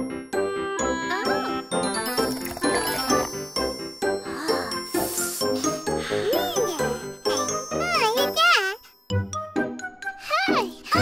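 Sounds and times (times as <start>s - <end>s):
cartoon background music chiming: 0.0s - 11.0s.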